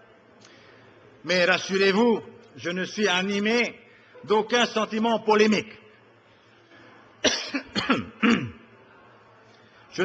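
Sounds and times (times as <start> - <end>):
speech: 1.2 - 5.8
person coughing: 7.2 - 8.6.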